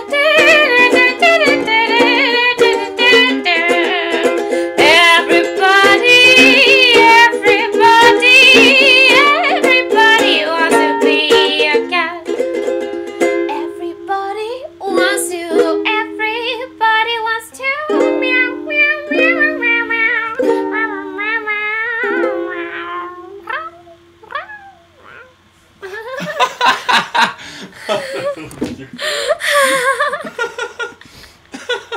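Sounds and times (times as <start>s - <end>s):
person singing wordless melody: 0.0s - 12.3s, 13.5s - 26.2s
ukulele strummed and picked: 0.0s - 24.2s.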